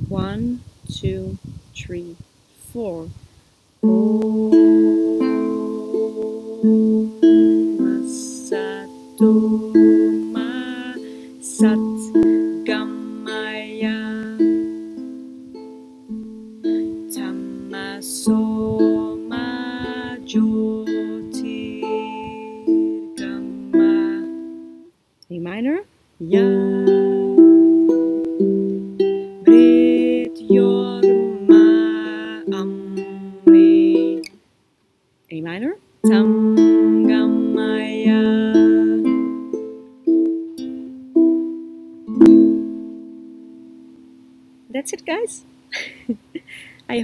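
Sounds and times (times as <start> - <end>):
woman singing softly: 3.8 - 15.1, 16.6 - 24.7, 26.2 - 34.4, 36.0 - 39.9
ukulele fingerpicked: 3.8 - 24.9, 26.2 - 34.4, 36.0 - 44.7.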